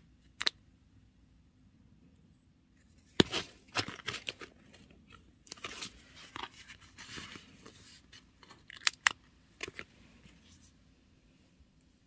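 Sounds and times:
paper rustling and crinkling: 0:03.1 - 0:08.7.

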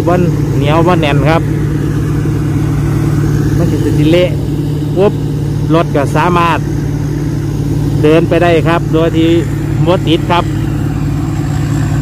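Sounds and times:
man speaking: 0:00.0 - 0:01.6, 0:03.4 - 0:06.8, 0:07.9 - 0:10.6
diesel engine running steadily: 0:00.0 - 0:12.0.

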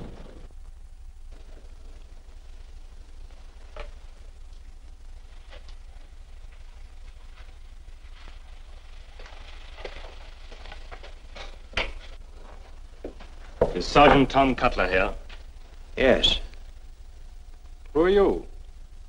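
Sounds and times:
faint crackle: 0:00.0 - 0:19.0
low hum: 0:00.0 - 0:19.0.

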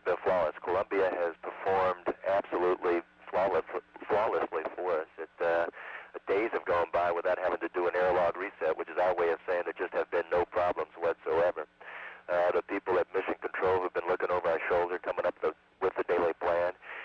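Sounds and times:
man speaking over radio: 0:00.0 - 0:17.0
steady low hum: 0:00.0 - 0:17.0.

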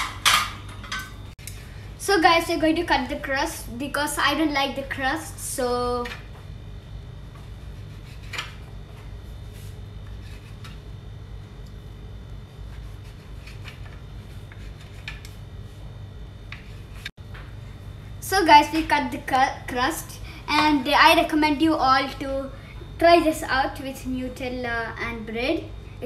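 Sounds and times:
low background hum: 0:00.0 - 0:26.0.

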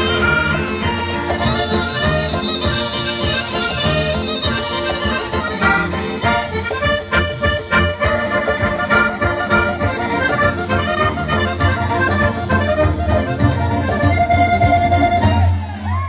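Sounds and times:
accordion folk dance tune: 0:00.0 - 0:15.8
guitar accompaniment: 0:00.0 - 0:15.9.

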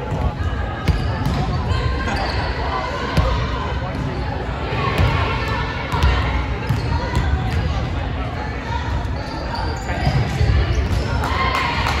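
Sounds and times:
volleyballs smacking in a hall: 0:00.0 - 0:01.7, 0:03.1 - 0:08.2.

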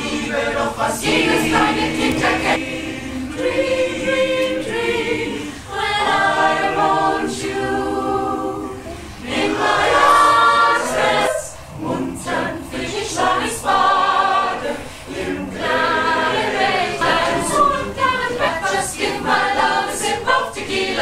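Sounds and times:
mixed choir singing: 0:00.0 - 0:21.0
singers breathing: 0:05.2 - 0:05.7, 0:08.8 - 0:09.3, 0:14.8 - 0:15.1.

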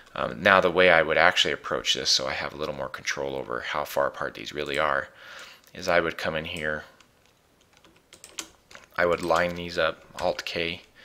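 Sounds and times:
computer keyboard keys clicking: 0:07.3 - 0:09.7.

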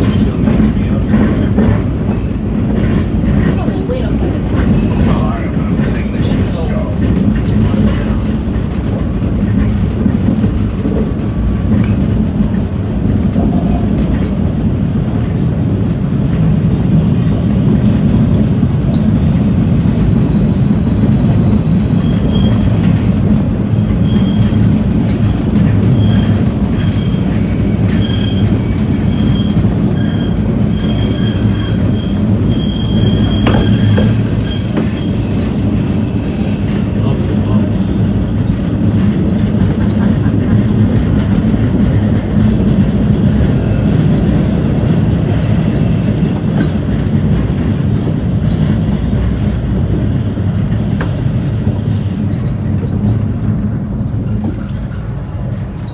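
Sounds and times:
subway car wheels and motors rumbling: 0:00.0 - 0:55.9.

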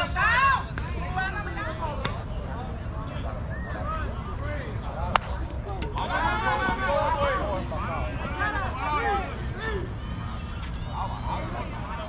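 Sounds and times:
players talking and calling out: 0:00.0 - 0:12.0.

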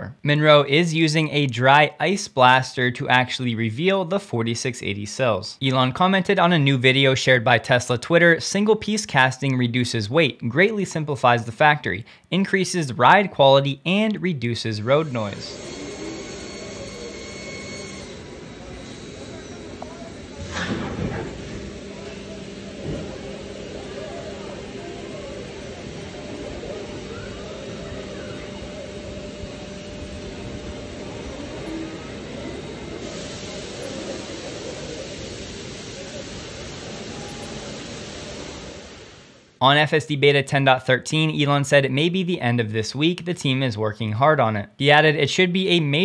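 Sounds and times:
industrial machinery hum and hiss: 0:14.8 - 0:39.6.

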